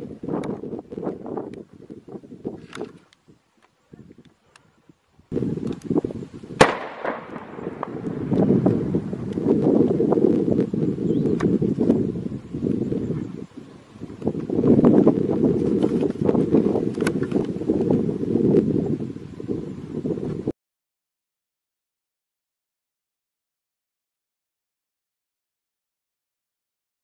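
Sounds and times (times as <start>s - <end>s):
dense low rumble: 5.3s - 20.5s
sharp cracks and pops: 5.6s - 6.0s, 6.6s - 9.6s, 15.6s - 17.9s
explosion blast: 6.6s - 10.3s.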